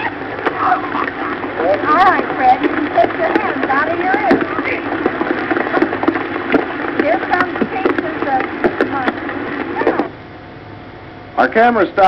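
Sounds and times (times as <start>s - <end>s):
falling sand and debris: 0.0s - 10.0s
faint voices calling out: 0.0s - 10.2s
sharp knocks: 0.3s - 10.1s.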